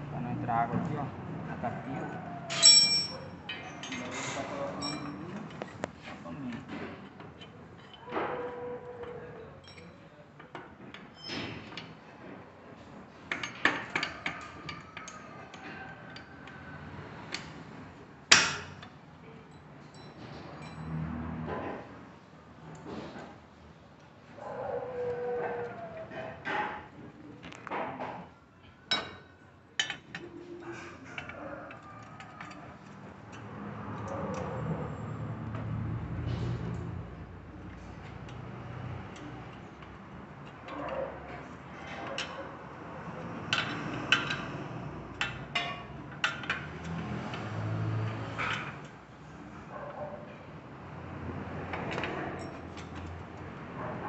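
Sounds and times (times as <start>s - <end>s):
metallic clinks of hand tools: 2.5s - 4.2s, 4.8s - 5.3s.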